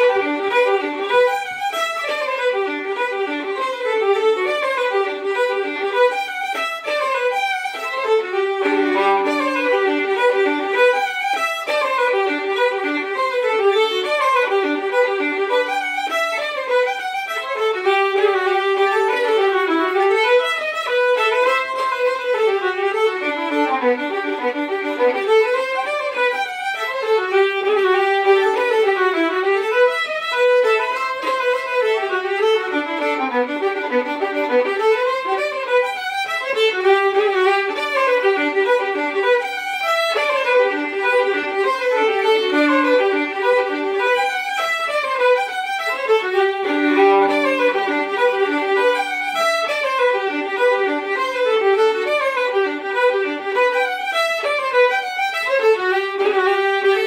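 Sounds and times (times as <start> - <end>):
two fiddles playing: 0.0 - 57.0.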